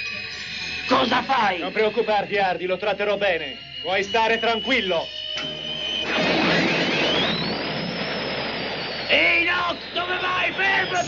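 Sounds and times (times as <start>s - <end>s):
cartoon jet engine spooling up: 4.0s - 11.0s.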